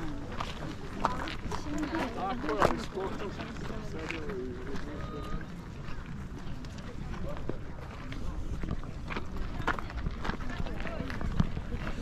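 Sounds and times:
people talking nearby: 0.0 - 12.0.

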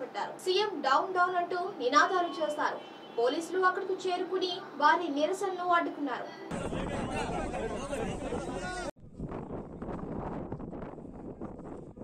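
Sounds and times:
wind buffeting microphone: 6.5 - 12.0.

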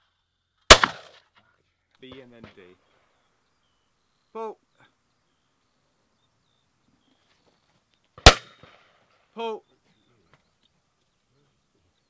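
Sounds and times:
shotgun shot with echo: 0.7 - 1.2, 8.2 - 8.9.

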